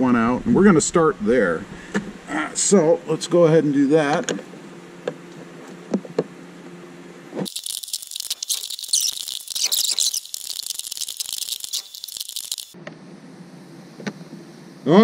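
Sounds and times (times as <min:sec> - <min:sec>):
wrench rattling clicks: 0:07.5 - 0:12.8.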